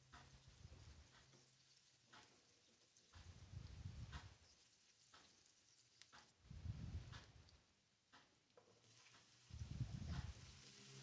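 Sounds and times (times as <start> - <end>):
wooden spatula stirring in a pan: 8.6 - 11.0.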